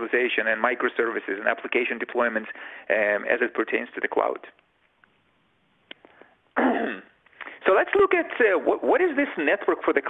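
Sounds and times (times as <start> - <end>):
man coughing: 6.6 - 7.2.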